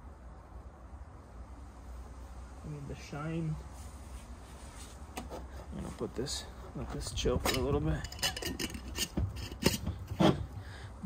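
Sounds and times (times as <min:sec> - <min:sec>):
rag rubbing on table: 0:08.2 - 0:10.5.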